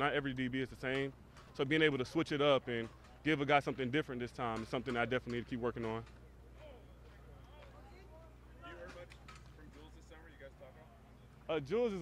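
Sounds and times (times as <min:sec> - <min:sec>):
faint distant speech: 0:00.0 - 0:12.0
steady low hum: 0:00.0 - 0:12.0.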